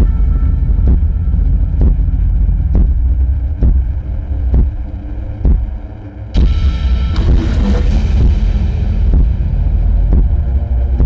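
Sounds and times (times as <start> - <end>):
deep loud drone: 0.0 - 11.0
heavy pulse like heartbeat: 0.0 - 11.0.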